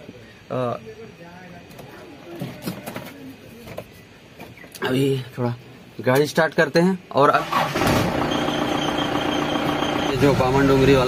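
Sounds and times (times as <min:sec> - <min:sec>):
engine cranking and idling: 0:07.4 - 0:11.0.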